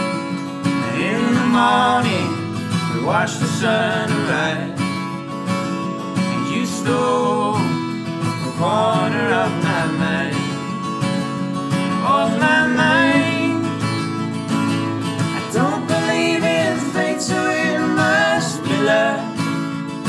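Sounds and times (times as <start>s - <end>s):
acoustic guitars strumming: 0.0s - 20.0s
person singing: 0.7s - 4.8s, 6.2s - 10.8s, 11.9s - 13.8s, 15.3s - 19.8s.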